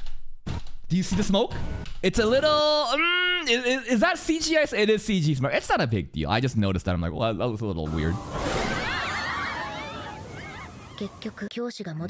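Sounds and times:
high wavering calls: 8.1 - 11.5.

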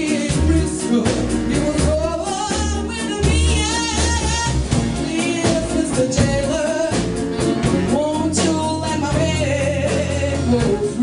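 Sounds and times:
live blues band playing: 0.0 - 11.0
steady bass line: 0.0 - 11.0
woman singing: 0.0 - 11.0.

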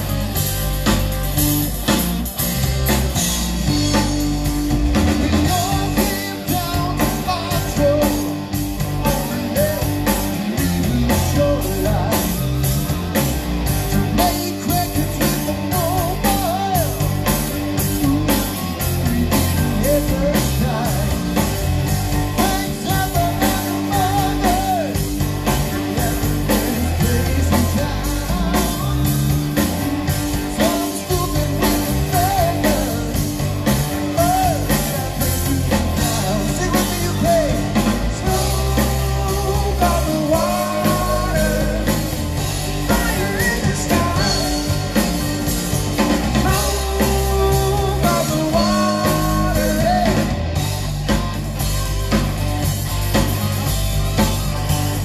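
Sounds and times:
bass guitar: 0.0 - 55.0
drum kit beat: 0.0 - 55.0
electric guitars: 0.0 - 55.0
person singing: 5.3 - 8.4, 13.9 - 17.1, 22.4 - 29.6, 30.3 - 33.2, 34.1 - 42.1, 42.8 - 45.1, 46.2 - 50.4.

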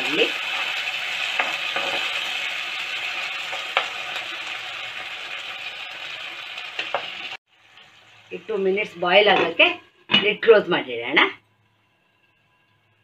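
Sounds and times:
food sizzling in a pan: 0.0 - 13.0
spatula scraping a pan: 0.5 - 2.3.

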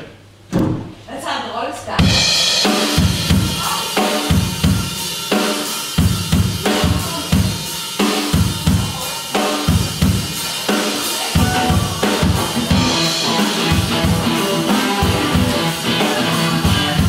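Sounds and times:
bass drum and snare hits: 0.5 - 1.0
blues band playing live: 2.0 - 17.0.

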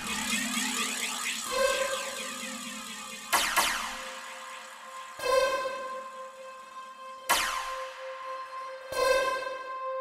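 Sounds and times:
sustained synth tones: 0.0 - 7.2.

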